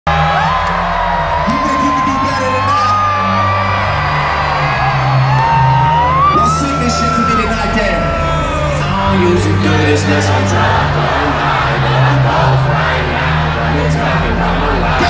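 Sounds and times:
hip-hop music over sound system: 0:00.0 - 0:15.0
crowd whooping: 0:00.1 - 0:09.8.

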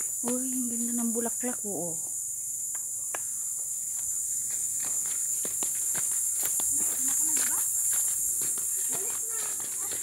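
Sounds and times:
high-pitched insect chorus: 0:00.0 - 0:10.0
footsteps on dirt trail: 0:03.5 - 0:10.0.

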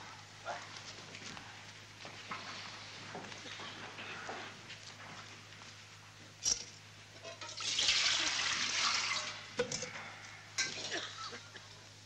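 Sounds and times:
water splashing in a washbasin: 0:07.5 - 0:09.5.

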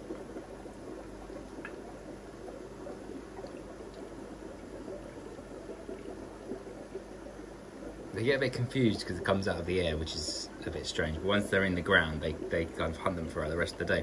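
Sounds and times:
faint ticks: 0:00.0 - 0:08.2
aquarium filter bubbling: 0:00.0 - 0:14.0
steady low hum: 0:00.0 - 0:14.0.

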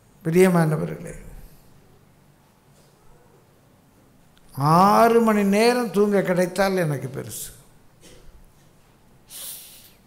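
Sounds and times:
man breathing in through nose: 0:09.3 - 0:10.0.

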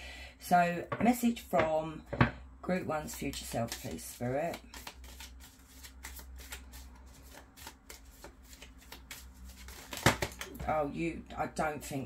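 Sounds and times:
cards being shuffled: 0:03.0 - 0:10.6.

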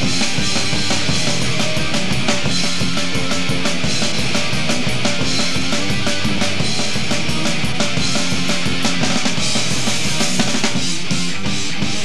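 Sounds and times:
bass guitar: 0:00.0 - 0:12.0
drum kit with cymbals: 0:00.0 - 0:12.0
electric guitars: 0:00.0 - 0:12.0.

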